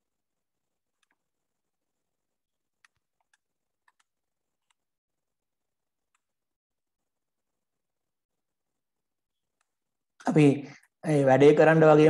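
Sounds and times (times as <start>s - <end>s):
faint mouse clicks: 0.9s - 1.3s, 2.8s - 4.9s, 9.5s - 9.8s.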